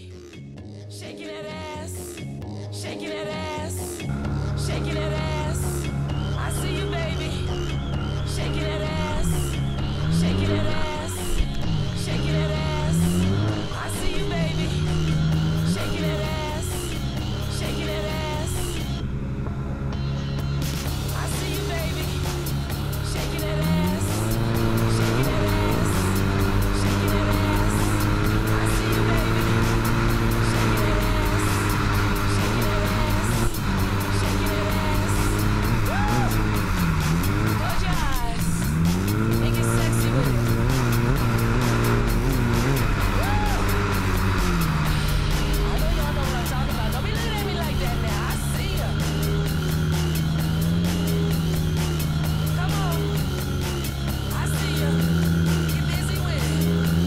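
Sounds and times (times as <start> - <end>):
song with vocals: 0.0 - 57.0
jet ski engine running: 4.2 - 57.0.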